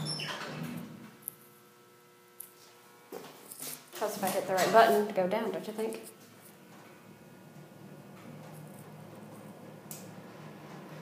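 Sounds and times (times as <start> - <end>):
elevator low hum: 6.6 - 11.0.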